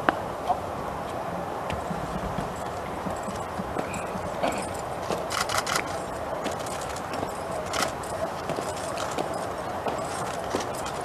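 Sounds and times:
boots marching on stone: 0:01.7 - 0:11.0.

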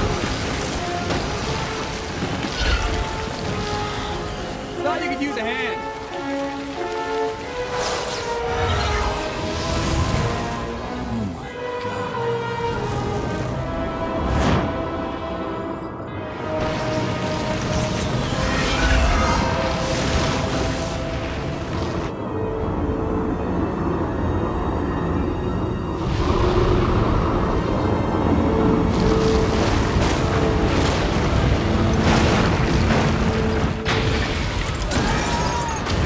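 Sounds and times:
tense film score: 0:00.0 - 0:36.0.

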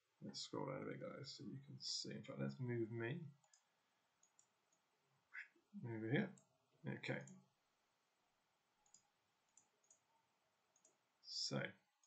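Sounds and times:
computer mouse clicks: 0:03.4 - 0:04.8, 0:08.8 - 0:10.1, 0:10.7 - 0:11.0.

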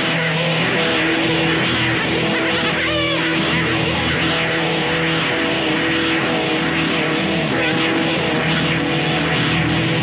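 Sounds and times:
electric guitar sustained notes: 0:00.0 - 0:10.0
low drone: 0:00.0 - 0:10.0.

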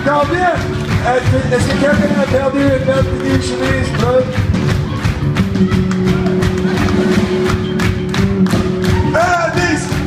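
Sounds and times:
bass: 0:00.0 - 0:10.0
drum hits in steady beat: 0:00.0 - 0:10.0.

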